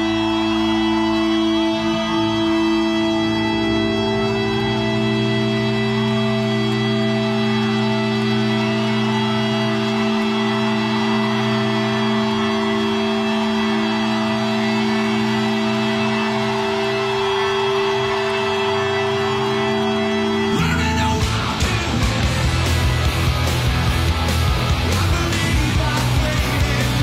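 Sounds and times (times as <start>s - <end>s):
sustained organ-like chord: 0.0s - 21.2s.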